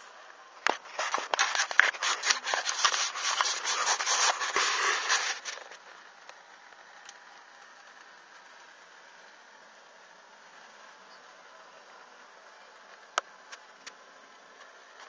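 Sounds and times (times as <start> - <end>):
cloth rubbing against microphone: 0.7 - 5.8.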